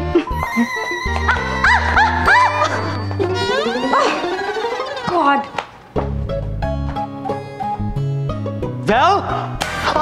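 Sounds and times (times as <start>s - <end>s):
swooping squeals: 0.4s - 5.5s
held high tones: 0.4s - 5.6s.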